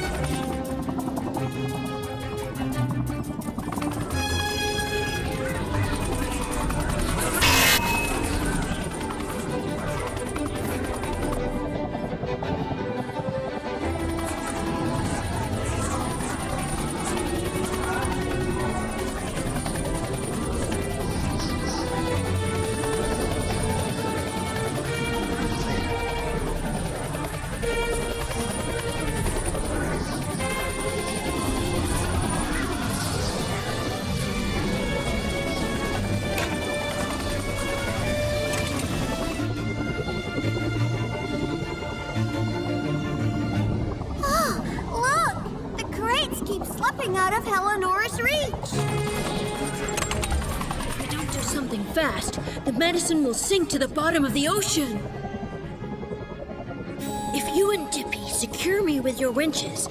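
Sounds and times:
music score of sustained notes: 0.0s - 46.6s, 47.5s - 59.9s.

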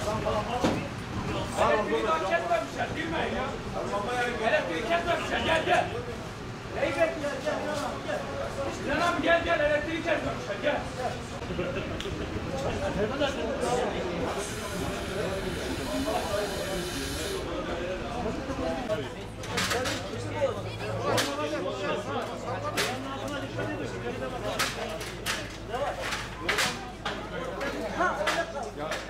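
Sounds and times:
indistinct voices: 11.2s - 21.4s.

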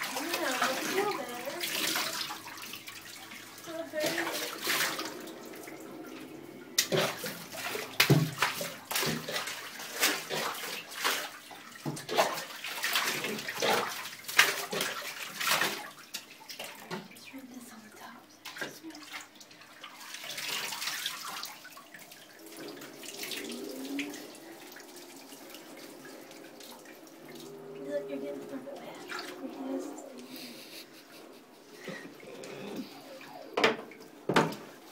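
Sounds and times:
water splashing in bathtub: 0.0s - 34.9s.

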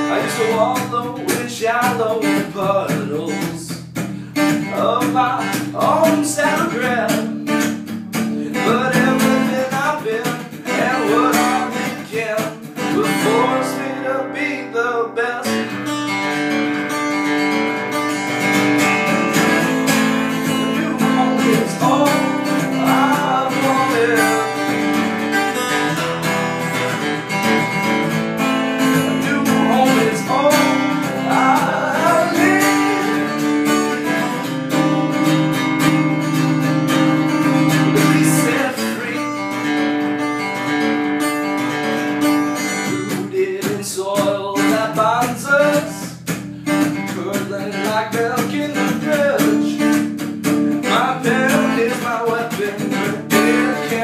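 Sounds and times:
guitar strumming: 0.0s - 54.0s.

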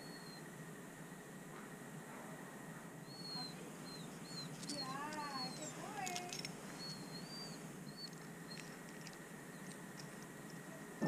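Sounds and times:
small birds chirping: 0.0s - 1.8s, 2.9s - 11.0s.

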